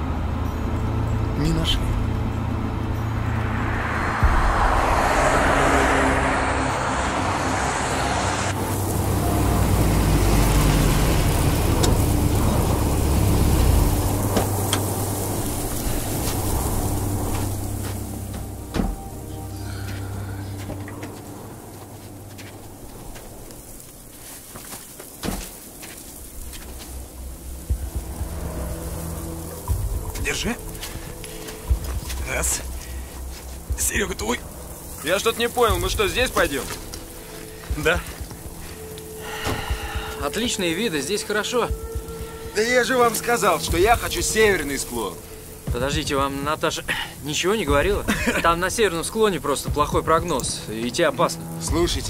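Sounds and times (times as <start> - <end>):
engine and road rumble: 0.0 - 52.0
rushing hiss: 2.8 - 52.0.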